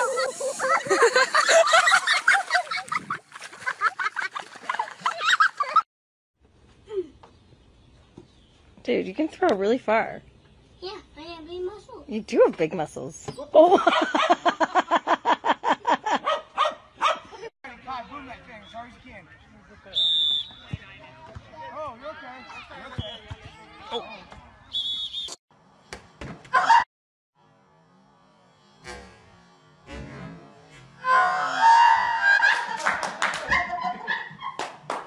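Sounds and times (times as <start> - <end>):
people laughing and shrieking: 0.0 - 5.8, 31.0 - 34.6.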